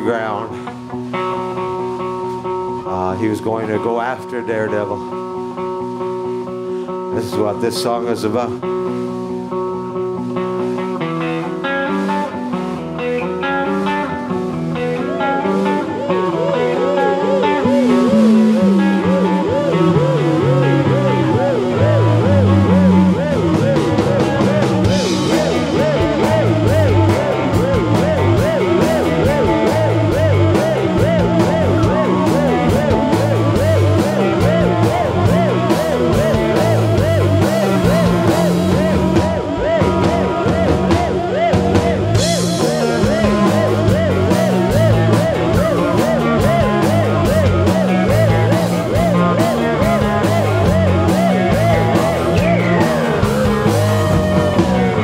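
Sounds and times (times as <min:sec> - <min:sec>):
electric guitar figure: 0:00.0 - 0:55.0
rock band playing: 0:00.0 - 0:55.0
walking bass line: 0:12.8 - 0:55.0.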